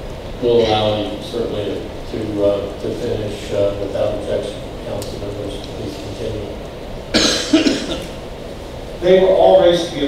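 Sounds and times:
man coughing: 0:07.1 - 0:08.2.

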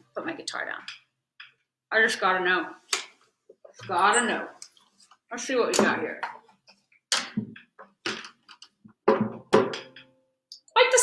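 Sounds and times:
objects knocking on a table: 0:09.0 - 0:10.1.

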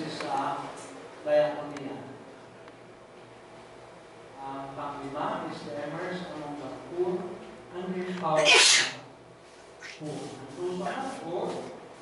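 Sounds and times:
person speaking: 0:04.4 - 0:09.0
person sneezing: 0:08.4 - 0:09.0.

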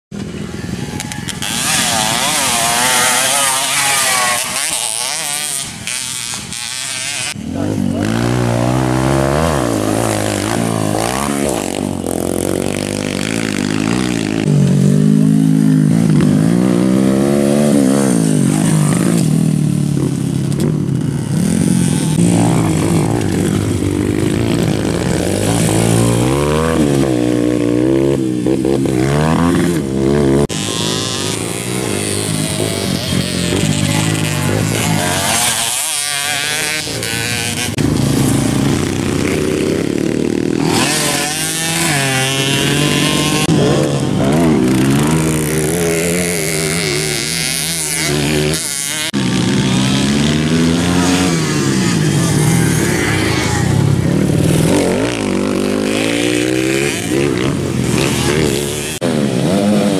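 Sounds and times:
dirt bike engines revving: 0:00.1 - 0:59.9.

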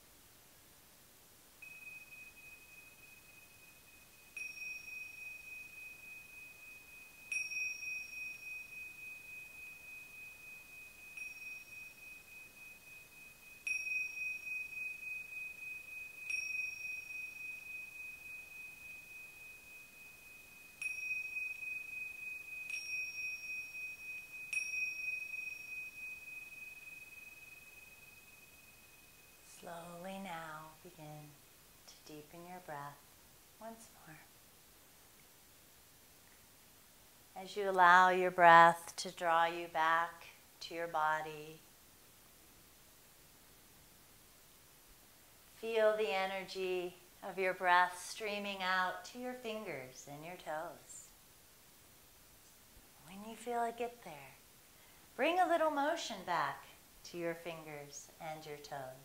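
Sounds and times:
small hand cymbals ringing: 0:01.6 - 0:31.0.

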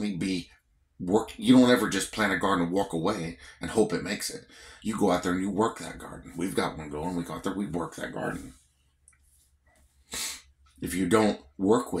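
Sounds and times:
man drawing sharp breath: 0:10.0 - 0:10.4.

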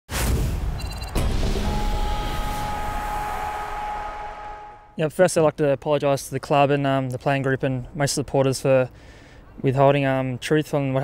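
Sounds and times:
held synthesised tones: 0:00.8 - 0:05.0.

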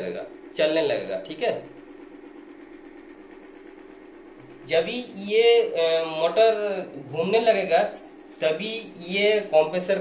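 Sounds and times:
blower fan motor humming: 0:00.0 - 0:10.0.

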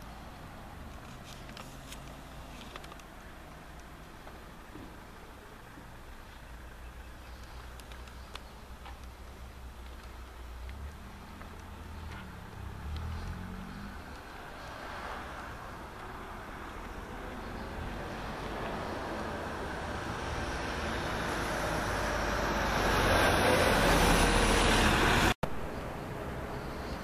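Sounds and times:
car passing on road: 0:09.0 - 0:27.0.

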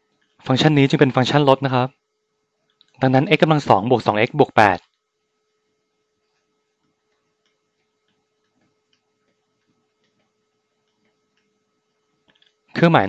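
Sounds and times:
low steady hum: 0:00.0 - 0:13.0
person speaking: 0:00.4 - 0:01.9, 0:03.0 - 0:04.8, 0:12.7 - 0:13.0.

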